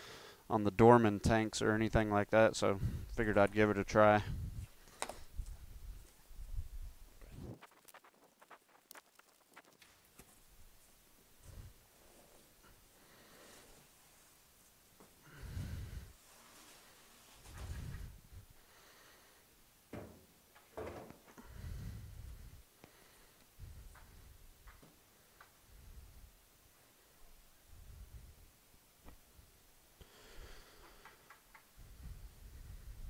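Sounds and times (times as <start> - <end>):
dull thumps: 19.9 - 21.3.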